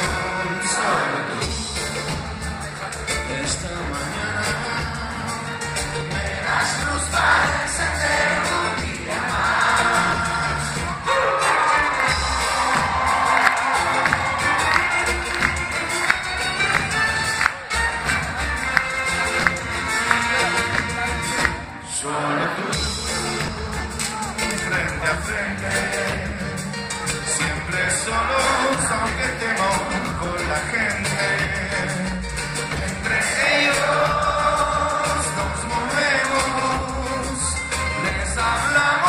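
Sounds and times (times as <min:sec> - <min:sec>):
live folk band playing: 0:00.0 - 0:21.8, 0:22.6 - 0:39.0
crowd cheering: 0:05.9 - 0:31.7, 0:32.7 - 0:37.3.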